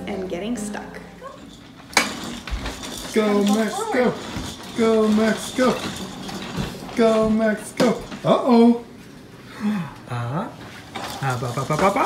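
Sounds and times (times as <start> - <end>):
walker rolling soft bumps: 1.2 - 9.2, 10.6 - 12.0
plastic walker clack: 1.4 - 8.5, 10.9 - 12.0.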